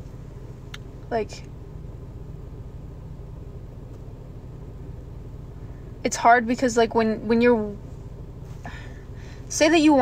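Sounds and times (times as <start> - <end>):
car cabin hum and rumble: 0.0 - 10.0.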